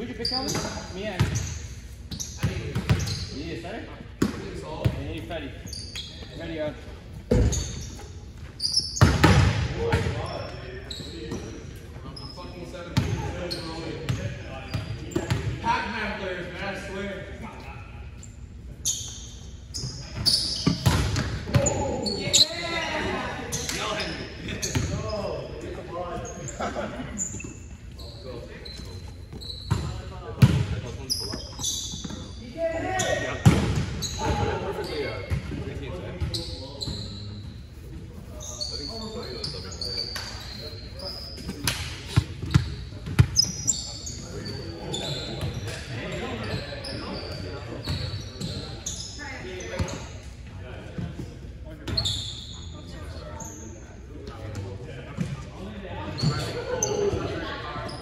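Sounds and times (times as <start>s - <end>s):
sneaker squeaks: 0.0s - 15.6s, 17.5s - 50.4s, 51.0s - 58.0s.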